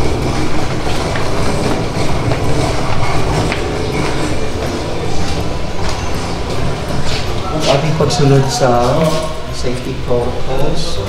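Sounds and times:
footsteps on steps: 0.0s - 7.9s.

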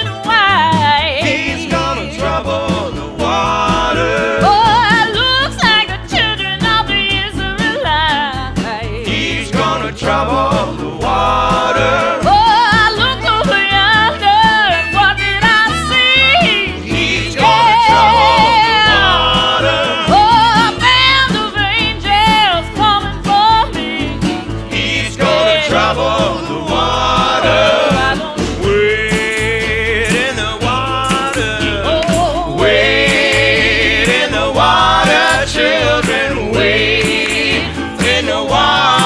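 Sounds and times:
gospel blues band music: 0.0s - 39.0s.

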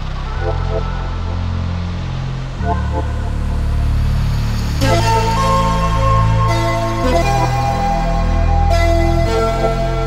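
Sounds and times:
low bass chord music: 0.0s - 10.0s.

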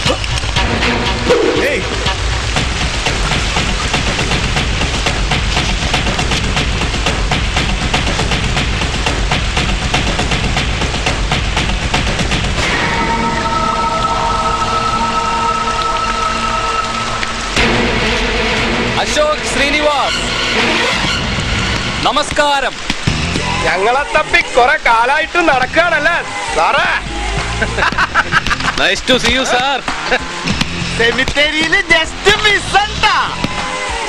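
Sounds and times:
background music: 0.0s - 34.0s
rain-like rush: 0.0s - 34.0s
sustained musical chords: 12.5s - 22.0s
gliding pitched sounds: 12.6s - 18.8s.

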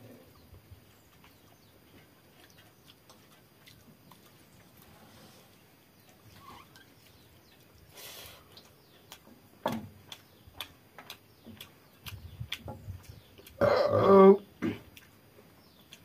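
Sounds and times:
wet mouthful chewing: 0.9s - 5.1s, 6.0s - 16.0s.

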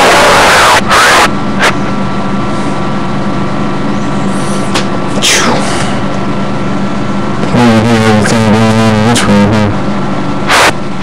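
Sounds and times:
loud static burst: 0.0s - 1.8s, 10.4s - 10.8s
radio static hiss: 0.0s - 2.0s, 7.4s - 9.8s, 10.4s - 10.8s
low hum: 0.0s - 11.0s.

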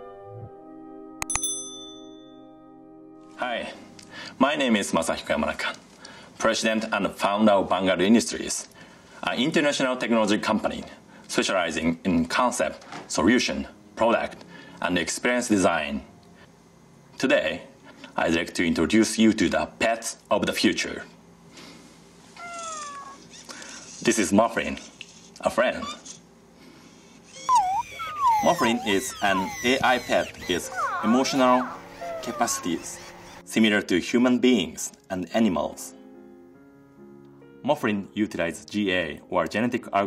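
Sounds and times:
background music chord: 0.0s - 4.9s, 30.1s - 40.0s
bright bell ding: 1.2s - 2.6s
robot pet squeaky call: 22.4s - 23.5s, 25.7s - 26.2s, 27.2s - 33.4s.

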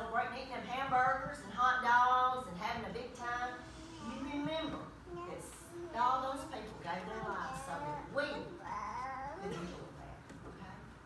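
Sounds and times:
child talking: 7.4s - 9.7s.

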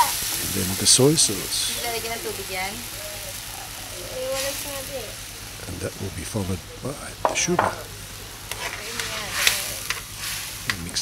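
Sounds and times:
sauce sizzling in a metal wok: 0.0s - 11.0s.

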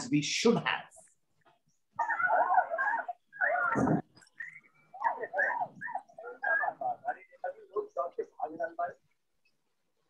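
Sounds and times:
dog whining and yipping: 2.0s - 7.3s.

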